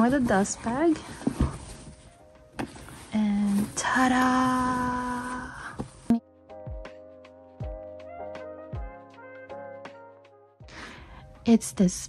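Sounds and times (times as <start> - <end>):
fabric rustling: 0.0 - 6.1.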